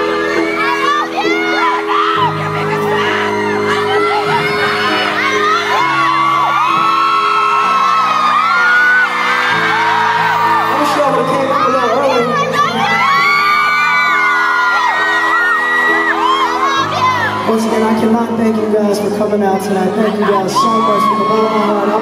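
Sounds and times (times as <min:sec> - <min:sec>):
audience whooping and screaming: 0:00.0 - 0:17.8, 0:19.9 - 0:22.0
keyboard chords: 0:00.0 - 0:22.0.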